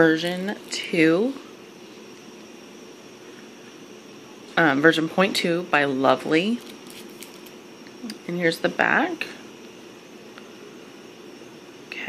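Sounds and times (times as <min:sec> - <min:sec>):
faint constant hum: 0:00.0 - 0:12.0.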